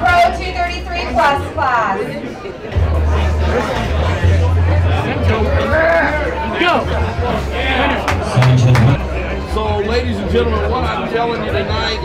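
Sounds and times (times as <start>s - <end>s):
crowd chatter: 0.0s - 12.0s
bass-heavy background music: 2.8s - 12.0s.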